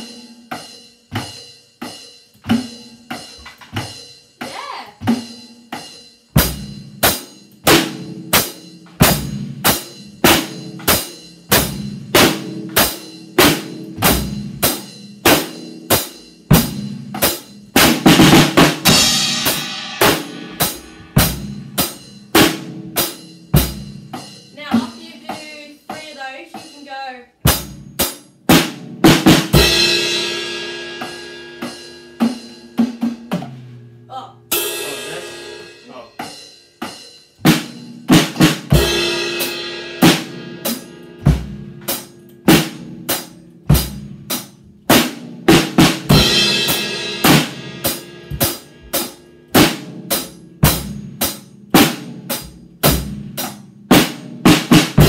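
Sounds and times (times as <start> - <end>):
drum kit beat: 0.0 - 55.0
heavy drum hits: 6.4 - 33.7, 37.4 - 55.0.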